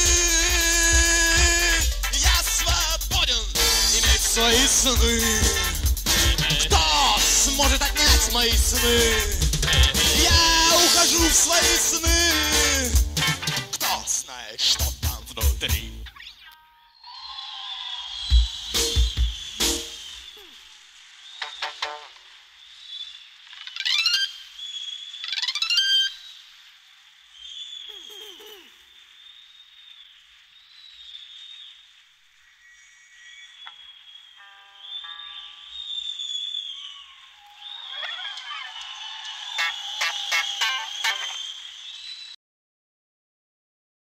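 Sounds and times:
high-pitched electronic rock music: 0.0 - 16.3, 18.2 - 20.1.

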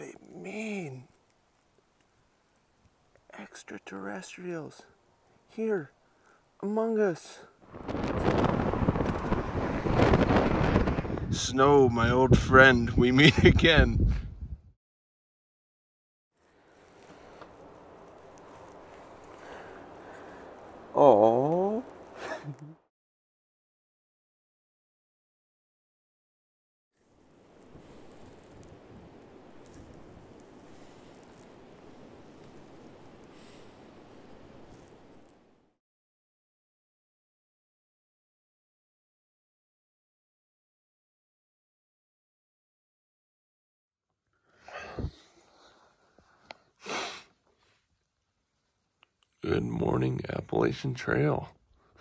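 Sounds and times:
faint outdoor rush: 0.0 - 14.7, 16.4 - 22.9, 27.0 - 35.8, 44.4 - 52.0
wind buffeting microphone: 7.6 - 14.7
dry leaves crackling: 16.4 - 22.3.

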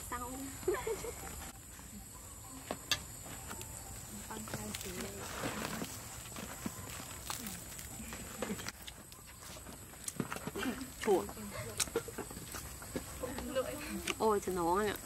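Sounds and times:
steady high-pitched hiss: 0.0 - 15.0
bread crust crackling: 4.3 - 11.0.

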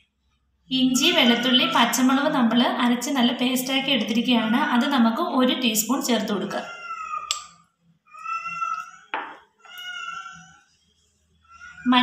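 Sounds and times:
cat meowing: 0.9 - 2.2, 6.6 - 7.3, 8.1 - 10.6.

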